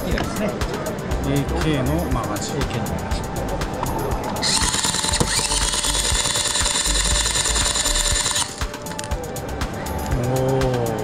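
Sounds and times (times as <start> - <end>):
motor whirring: 4.4 - 9.1.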